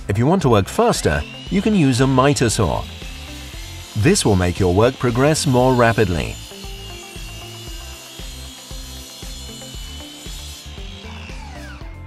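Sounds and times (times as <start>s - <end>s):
mitre saw cutting with whine: 0.0s - 12.0s
saw blade spinning down: 0.6s - 12.0s.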